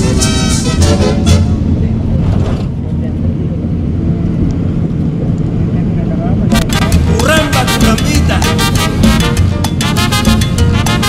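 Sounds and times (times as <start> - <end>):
car rumble from inside cabin: 1.3 - 8.8.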